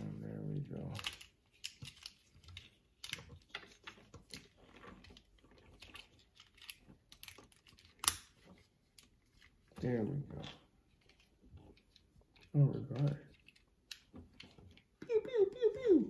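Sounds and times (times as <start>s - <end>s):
plastic toy clicking and snapping: 0.9s - 4.6s, 5.2s - 8.4s.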